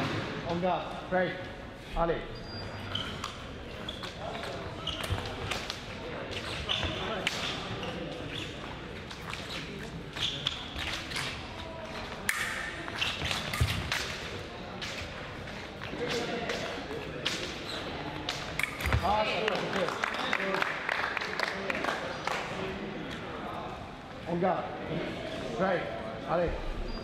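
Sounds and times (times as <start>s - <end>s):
fencing footwork clicks on metal: 12.2s - 14.2s.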